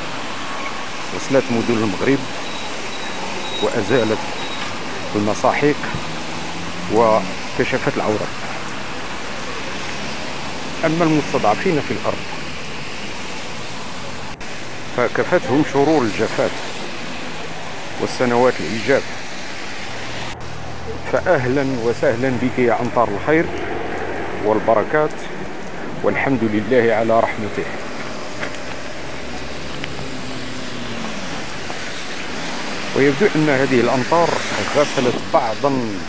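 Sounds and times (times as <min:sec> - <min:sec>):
car driving past: 0:00.0 - 0:15.0
heavy rain on wet street: 0:00.0 - 0:36.0.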